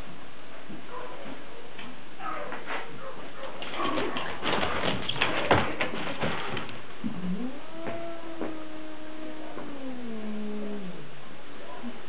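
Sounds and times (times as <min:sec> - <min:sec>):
rustling and scuffling: 0:00.0 - 0:07.0.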